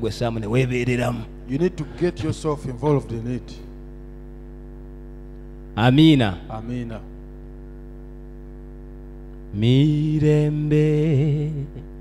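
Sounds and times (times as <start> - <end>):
buzzy mains hum: 0.0 - 12.0.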